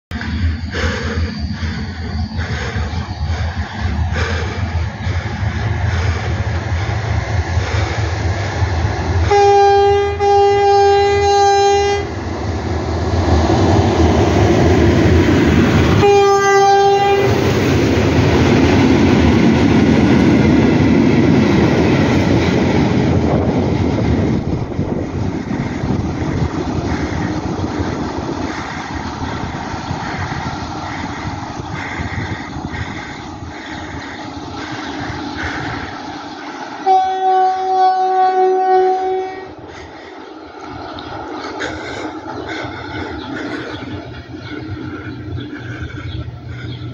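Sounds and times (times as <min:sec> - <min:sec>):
train running past: 0:00.1 - 0:46.9
train horn blasts: 0:09.2 - 0:12.1, 0:16.0 - 0:17.4, 0:36.8 - 0:39.6.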